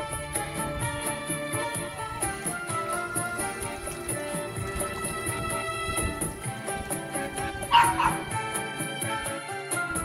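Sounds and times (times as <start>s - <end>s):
background music: 0.0s - 10.0s
dog yips: 7.7s - 8.2s.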